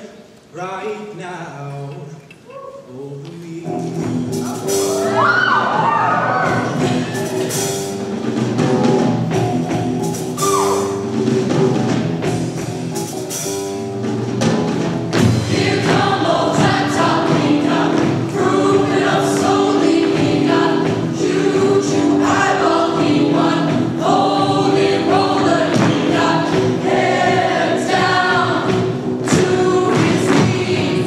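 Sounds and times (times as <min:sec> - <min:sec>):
choir singing in harmony: 0:04.4 - 0:07.8, 0:15.2 - 0:31.0.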